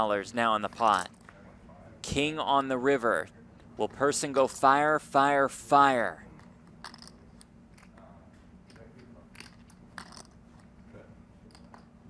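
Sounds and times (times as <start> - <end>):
low steady hum: 0.0 - 12.0
poker chips clicking: 6.8 - 7.2, 9.4 - 10.4.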